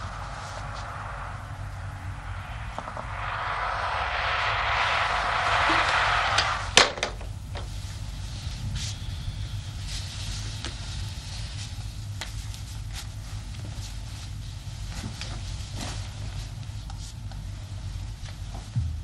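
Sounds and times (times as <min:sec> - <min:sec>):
low steady hum: 0:00.0 - 0:07.9
hiss: 0:00.0 - 0:11.4.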